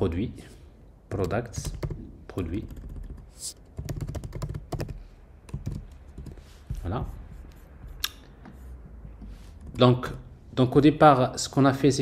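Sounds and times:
computer keyboard typing: 1.1s - 6.4s.

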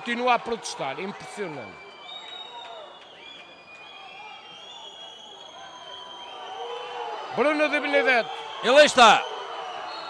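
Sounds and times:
long steady whistles: 1.4s - 10.0s.

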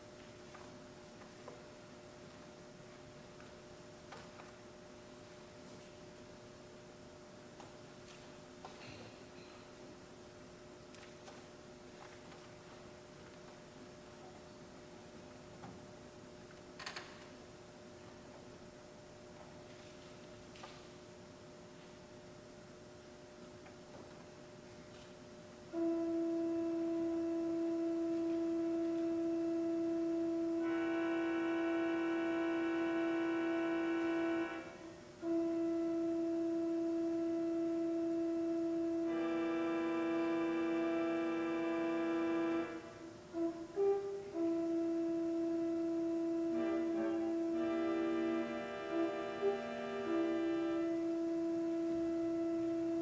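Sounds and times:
brighter fuller organ sound: 24.6s - 53.0s
organ sustained note: 25.7s - 53.0s.

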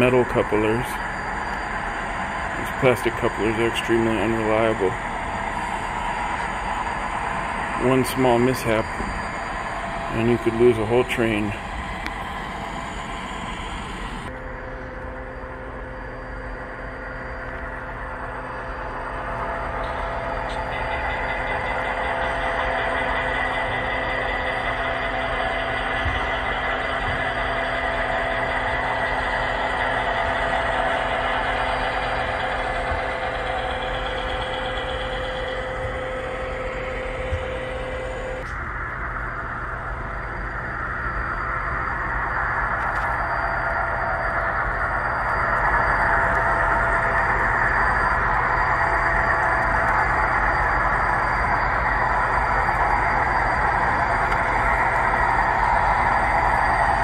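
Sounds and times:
diesel locomotives droning: 0.0s - 57.0s
train rolling on track: 0.0s - 57.0s.

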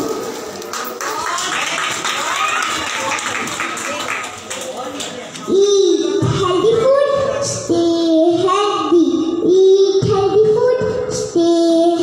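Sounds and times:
overlapping voices: 0.0s - 6.1s
audience clapping: 0.3s - 5.6s.

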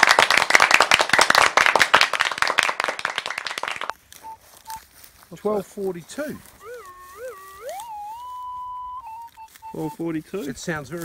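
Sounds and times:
many hands clapping: 0.0s - 4.0s.

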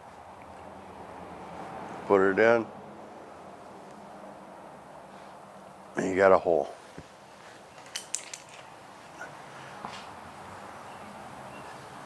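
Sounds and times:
handling clicks and rustles: 6.9s - 9.2s.

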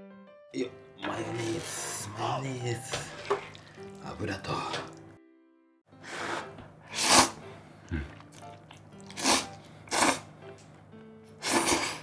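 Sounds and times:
soft piano notes: 0.6s - 5.2s.

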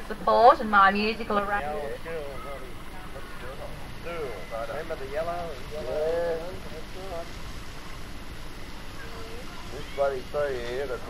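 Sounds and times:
distant people talking: 0.0s - 7.5s, 8.4s - 11.0s
low background noise: 0.0s - 11.0s.

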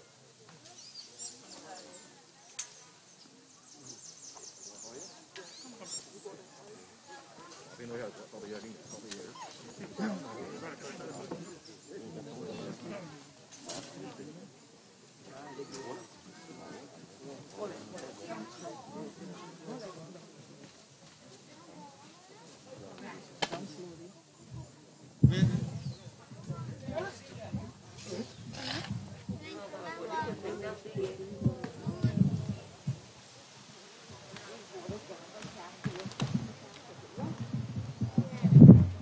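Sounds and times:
murmur of voices: 0.0s - 39.0s.

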